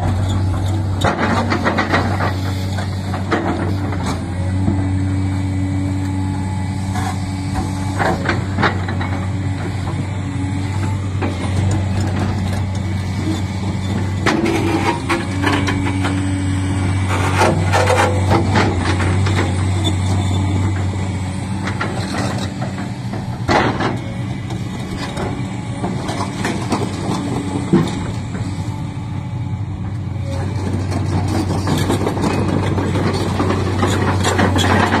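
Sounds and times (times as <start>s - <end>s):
excavator diesel engine running: 0.0s - 35.0s.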